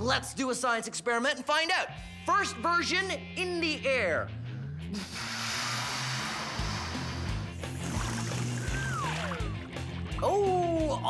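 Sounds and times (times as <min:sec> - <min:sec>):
background music: 0:00.0 - 0:11.0
air hissing out of balloon: 0:04.9 - 0:09.2
whistle-like falling tone: 0:08.6 - 0:09.5.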